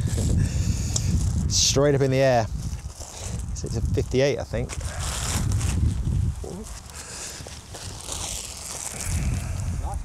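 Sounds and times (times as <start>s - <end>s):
wind buffeting microphone: 0.0s - 10.0s
plastic wrapping crinkling: 2.6s - 9.4s.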